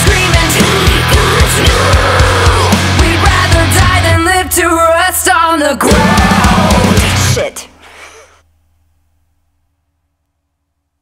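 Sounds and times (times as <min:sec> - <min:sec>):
heavy metal music: 0:00.0 - 0:07.7
singer breathing: 0:07.7 - 0:08.5.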